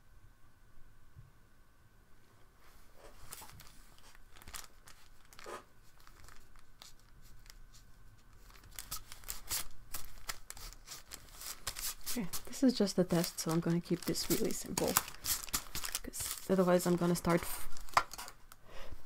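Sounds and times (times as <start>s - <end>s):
paper rustling on desk: 2.6s - 18.4s.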